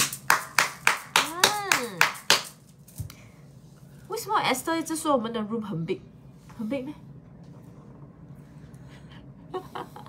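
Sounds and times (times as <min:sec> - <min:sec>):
hand claps: 0:00.0 - 0:02.7.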